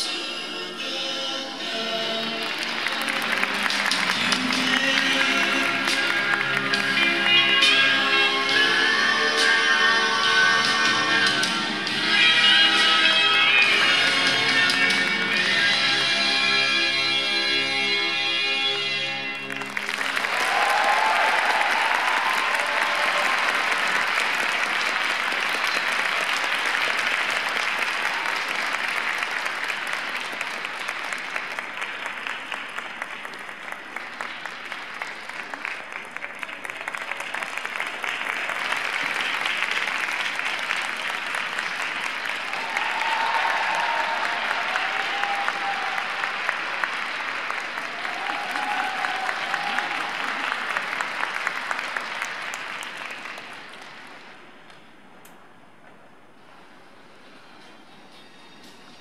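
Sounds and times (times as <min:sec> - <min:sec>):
audience applauding: 0:02.1 - 0:07.8, 0:19.3 - 0:54.5
faint crowd calls: 0:42.5 - 0:50.9.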